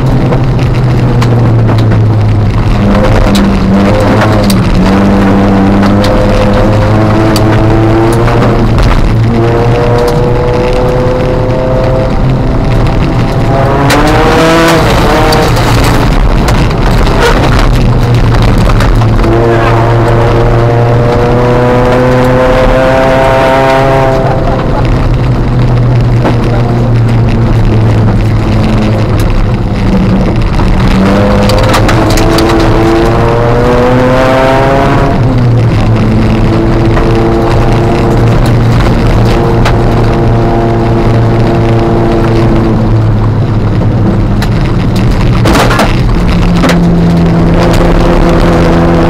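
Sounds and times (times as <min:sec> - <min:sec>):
car engine revving: 0:00.0 - 0:49.0.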